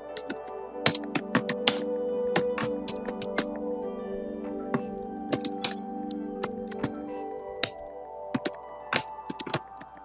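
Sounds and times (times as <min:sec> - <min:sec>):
background music of sustained tones: 0:00.0 - 0:10.0
keyboard keys clicking: 0:00.0 - 0:10.0.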